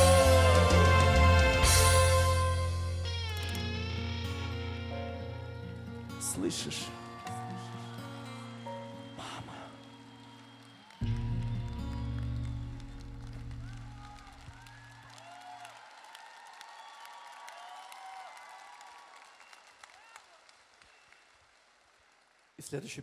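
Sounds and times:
audience applauding and cheering: 0.0s - 2.8s, 6.2s - 22.7s
music chord with deep bass: 0.0s - 5.6s.

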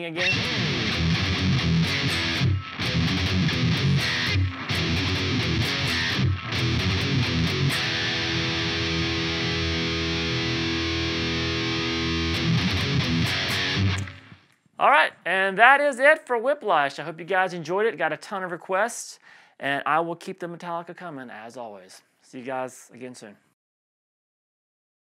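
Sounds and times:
distorted electric guitar riff: 0.0s - 14.4s.

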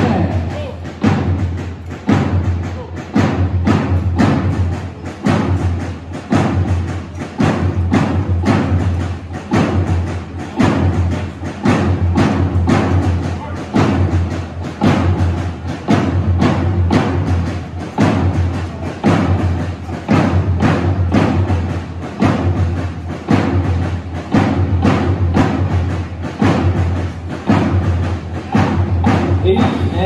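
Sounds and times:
marching drums: 0.0s - 30.0s.

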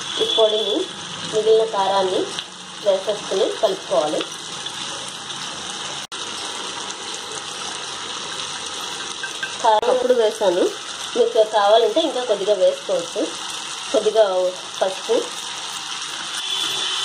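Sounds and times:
chutney sizzling in a pan: 0.0s - 17.0s.

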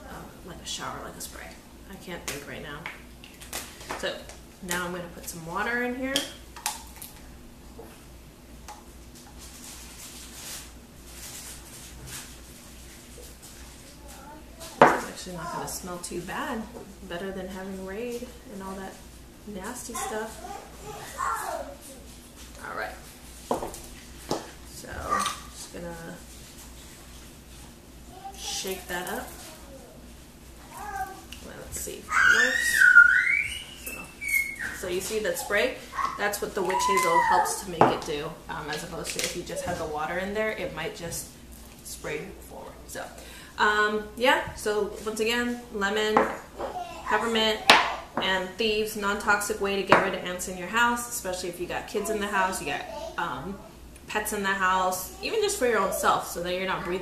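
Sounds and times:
high whistle-like tone: 32.6s - 34.8s.

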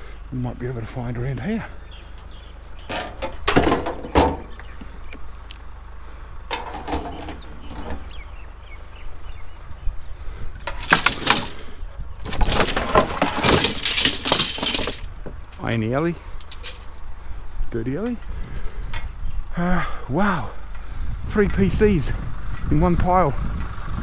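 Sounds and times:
junk clattering: 2.0s - 4.8s, 6.5s - 8.3s, 10.5s - 17.0s.

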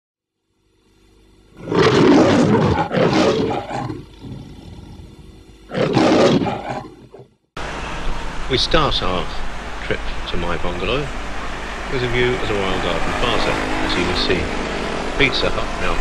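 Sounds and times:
lion roaring: 1.6s - 7.3s
street noise: 7.6s - 16.0s.

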